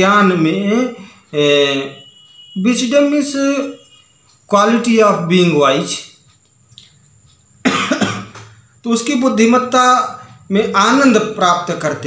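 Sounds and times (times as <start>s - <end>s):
man speaking: 0.0s - 6.2s, 8.8s - 12.0s
man coughing: 7.6s - 8.6s.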